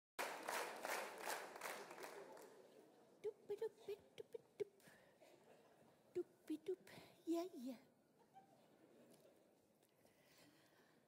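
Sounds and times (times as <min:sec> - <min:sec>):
audience applauding: 0:00.2 - 0:02.6.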